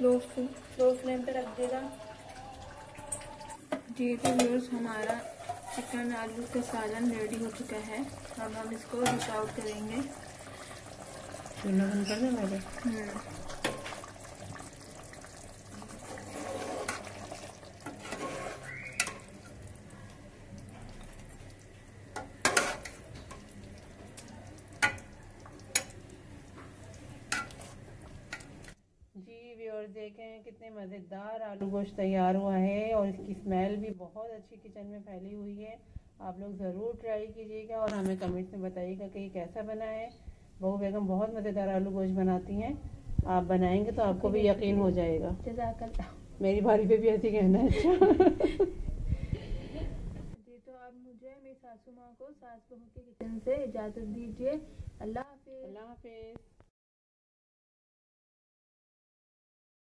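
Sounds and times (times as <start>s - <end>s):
curry bubbling in a pot: 4.6s - 28.8s.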